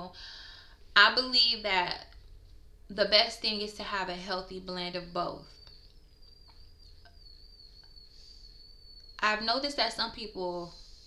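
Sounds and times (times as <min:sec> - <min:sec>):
faint high-pitched whine: 0:00.0 - 0:11.0
low hum: 0:00.0 - 0:11.0.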